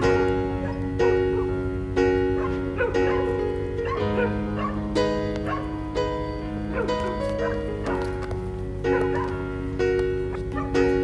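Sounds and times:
slow piano music: 0:00.0 - 0:11.0.

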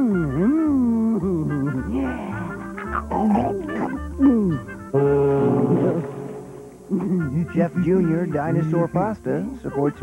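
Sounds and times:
jingle music with sliding notes: 0:03.7 - 0:10.0.

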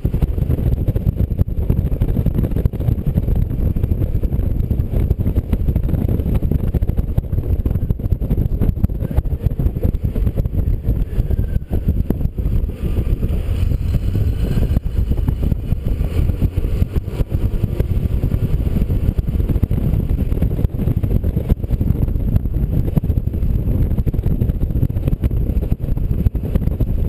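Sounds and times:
road noise: 0:00.0 - 0:27.0
wind buffeting microphone: 0:00.0 - 0:27.0.

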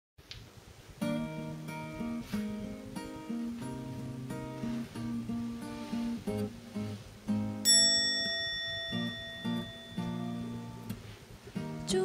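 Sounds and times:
acoustic guitar picking: 0:01.0 - 0:12.0
high bell-like ring: 0:07.6 - 0:10.9.

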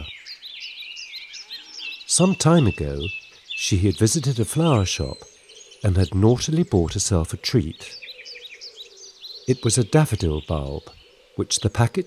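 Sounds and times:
birds chirping and twittering: 0:00.0 - 0:12.0.

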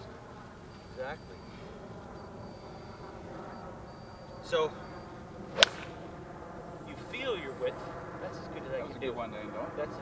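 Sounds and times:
golf club striking ball: 0:05.5 - 0:06.2.

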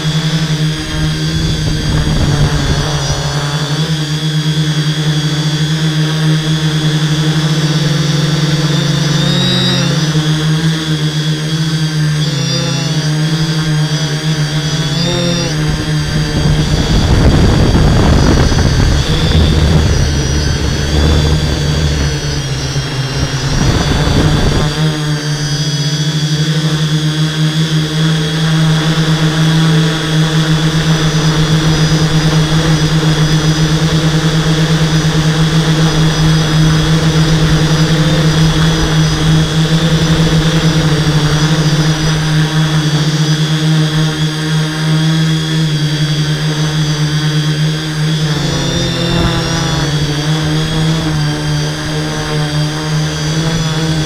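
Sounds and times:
drone motors humming: 0:00.0 - 0:54.0
rough rushing noise: 0:14.5 - 0:25.2.

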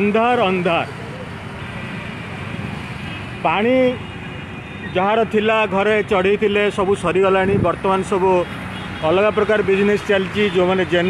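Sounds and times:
cars and motorbikes passing: 0:00.0 - 0:11.0.

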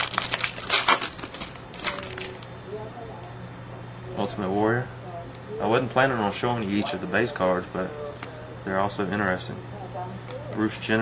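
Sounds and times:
foil wrapper tearing and crinkling: 0:00.0 - 0:02.5.

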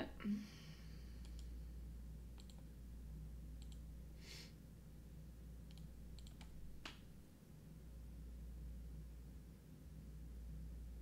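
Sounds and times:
steady low hum: 0:00.0 - 0:11.0
short breathy hiss: 0:04.2 - 0:04.6.

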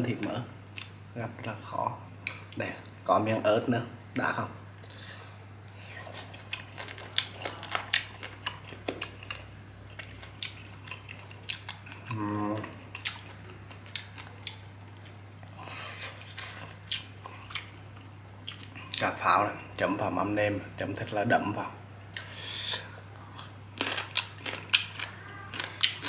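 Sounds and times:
close-miked chewing: 0:05.7 - 0:19.2, 0:23.2 - 0:26.0.

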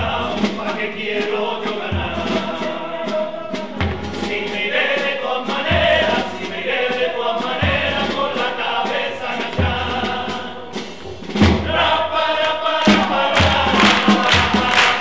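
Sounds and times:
men singing in chorus: 0:00.0 - 0:10.8, 0:11.6 - 0:15.0
bass drum beat: 0:12.9 - 0:15.0.

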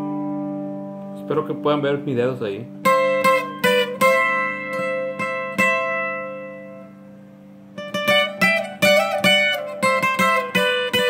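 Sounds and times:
acoustic guitar plucked notes: 0:00.0 - 0:11.0.

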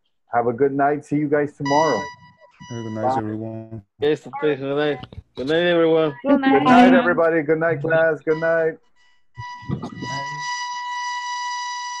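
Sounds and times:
high-pitched electronic tone: 0:01.6 - 0:03.5, 0:06.3 - 0:07.2, 0:09.4 - 0:12.0
person saying good night: 0:02.8 - 0:08.1.

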